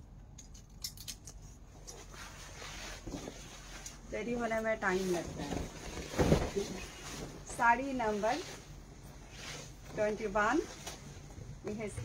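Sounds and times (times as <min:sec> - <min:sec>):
fabric rustling and clicking: 0:01.8 - 0:08.6.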